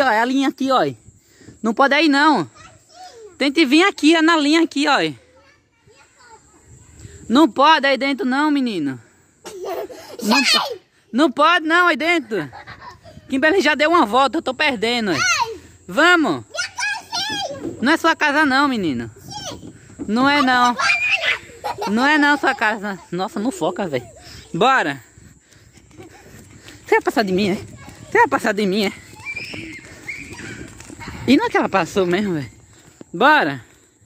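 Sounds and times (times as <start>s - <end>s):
quiet outdoor background noise: 0.0s - 34.0s
child speaking: 2.5s - 3.4s, 5.2s - 7.0s, 10.2s - 10.8s, 15.1s - 15.7s, 16.5s - 17.8s, 19.2s - 19.8s, 20.4s - 23.1s, 27.3s - 28.2s
child giggling: 9.4s - 10.8s, 12.3s - 13.3s, 20.8s - 23.2s, 25.8s - 26.6s.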